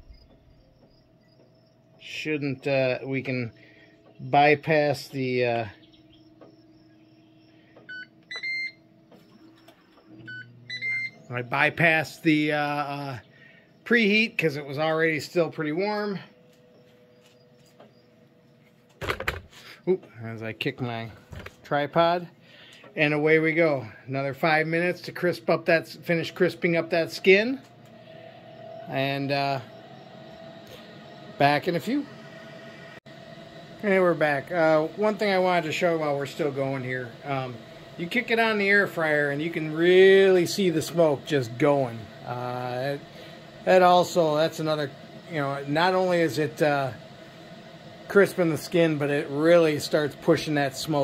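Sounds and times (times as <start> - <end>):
faint steady hum: 0.0 - 51.0
control panel beeps: 7.8 - 11.7.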